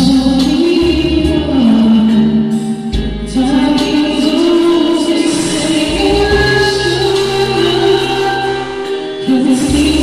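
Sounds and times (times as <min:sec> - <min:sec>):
instrumental backing track: 0:00.0 - 0:10.0
man singing a ballad: 0:00.0 - 0:10.0.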